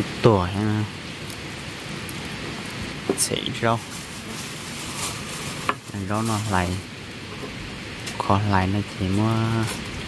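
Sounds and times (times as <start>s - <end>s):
light rain pattering: 0.0s - 10.0s
plastic bag crinkle: 3.4s - 6.9s.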